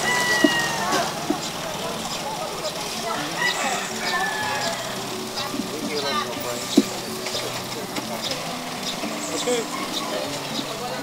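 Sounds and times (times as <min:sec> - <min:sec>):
quiet indistinct voices: 0:00.0 - 0:11.0.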